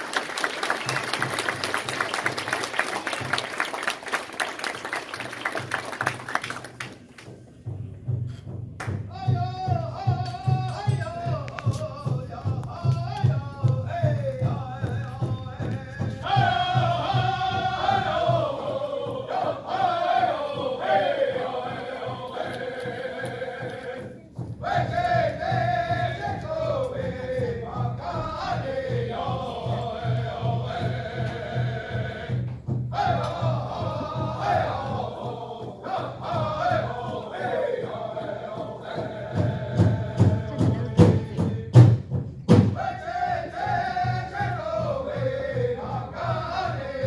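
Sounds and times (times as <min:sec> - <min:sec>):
steady drum beat: 0:05.5 - 0:47.0
group singing in unison: 0:09.1 - 0:47.0.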